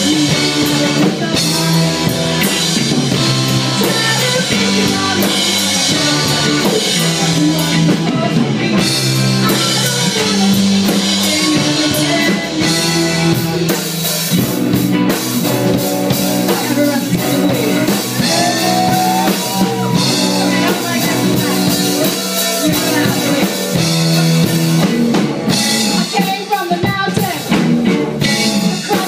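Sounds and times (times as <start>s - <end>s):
woman singing: 0.0s - 2.7s, 3.6s - 13.8s, 15.5s - 25.1s, 25.8s - 29.0s
live rock band playing: 0.0s - 29.0s.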